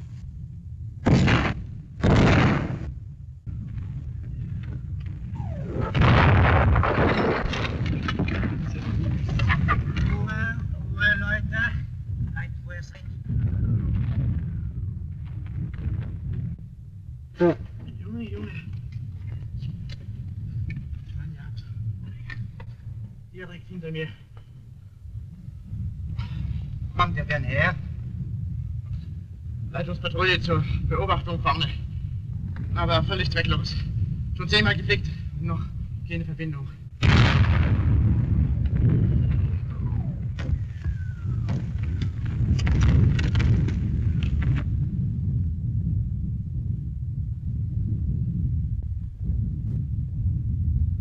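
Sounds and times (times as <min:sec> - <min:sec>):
low rumble of bombardment: 0:00.0 - 0:51.0
sharp bangs: 0:01.0 - 0:03.0, 0:05.3 - 0:10.1
artillery shells exploding: 0:01.0 - 0:11.9, 0:13.1 - 0:16.6, 0:37.0 - 0:45.6
men's voices: 0:07.8 - 0:14.4, 0:26.2 - 0:28.0, 0:32.6 - 0:36.8.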